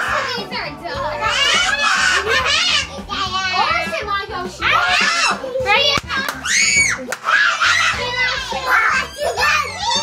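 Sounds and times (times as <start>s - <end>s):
children talking and squealing: 0.0s - 10.0s.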